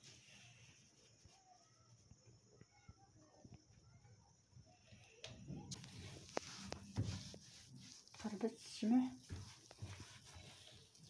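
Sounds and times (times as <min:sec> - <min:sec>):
hands squeezing crumbly dough: 0:05.8 - 0:11.0.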